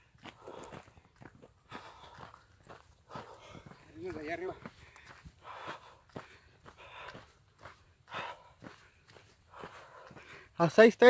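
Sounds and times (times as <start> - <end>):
footsteps on dirt trail: 0.0 - 11.0.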